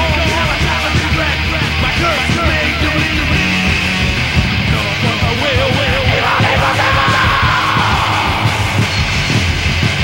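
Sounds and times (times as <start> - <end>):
distorted guitars: 0.0 - 10.0
drums: 0.0 - 10.0
heavy metal band playing: 0.0 - 10.0
high yelled vocal note: 5.8 - 9.4.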